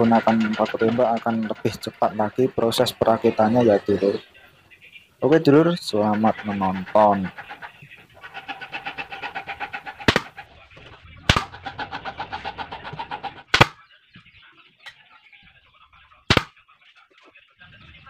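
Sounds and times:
faint rapid pulsing: 0.0s - 13.6s
nail gun firing into wood: 13.5s - 13.8s, 16.3s - 16.5s.

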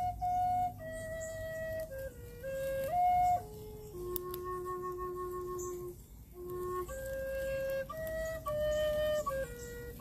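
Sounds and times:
flute holding low note: 0.0s - 10.0s.

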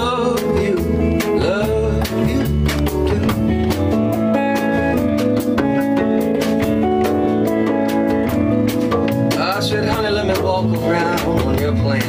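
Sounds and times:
electric guitar lead: 0.0s - 12.0s
live band playing: 0.0s - 12.0s.

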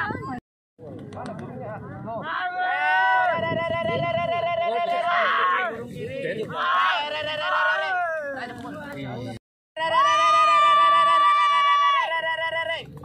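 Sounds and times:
crowd chatter: 0.0s - 9.4s
men shouting long calls: 2.2s - 8.5s.

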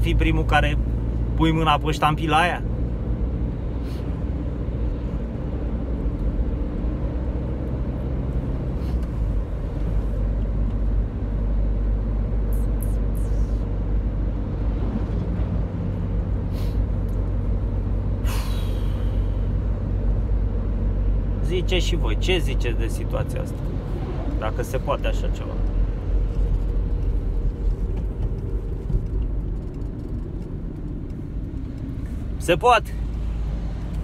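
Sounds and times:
engine and road noise in van: 0.0s - 34.0s.

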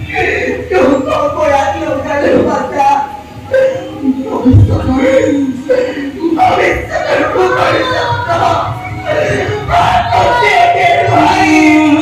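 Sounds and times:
person declaiming loudly: 0.0s - 8.7s.

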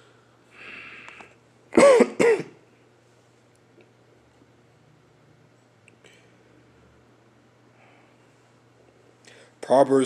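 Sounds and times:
man coughing: 1.8s - 2.6s.

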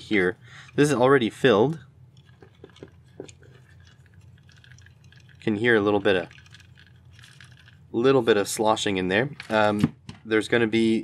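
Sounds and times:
liquid sloshing faintly: 0.0s - 8.8s.

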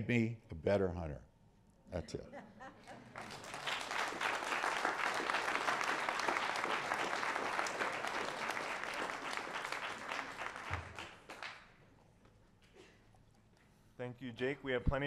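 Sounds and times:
audience applauding: 3.1s - 11.7s.

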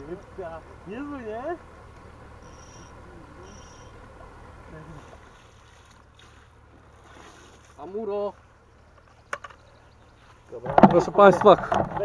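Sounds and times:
faint high chirps: 2.4s - 4.1s.

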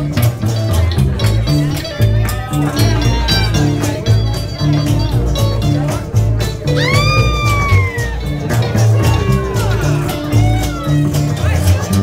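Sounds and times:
strummed acoustic guitars: 0.0s - 12.0s
upright bass: 0.0s - 12.0s.

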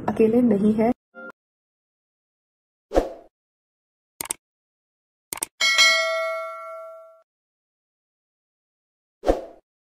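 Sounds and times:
notification bell ding: 5.6s - 7.2s.

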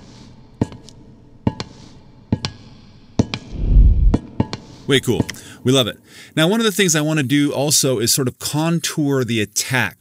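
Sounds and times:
deep low rumble: 3.5s - 4.4s.

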